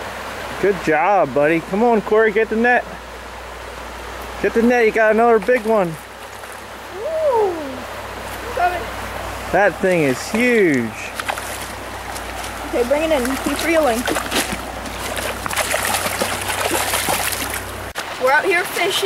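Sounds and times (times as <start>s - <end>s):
creek water rushing: 0.0s - 19.0s
person's drawn-out exclamation: 6.9s - 7.9s
person calling: 6.9s - 8.9s.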